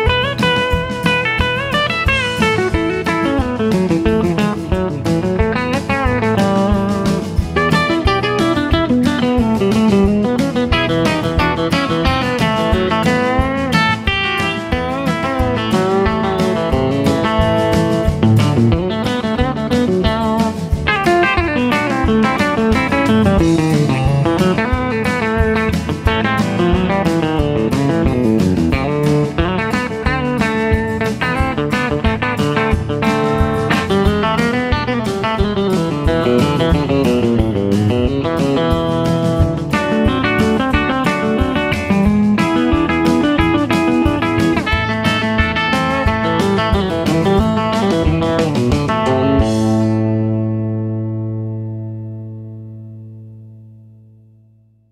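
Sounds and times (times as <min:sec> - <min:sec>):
guitar music with bass: 0:00.0 - 0:54.9.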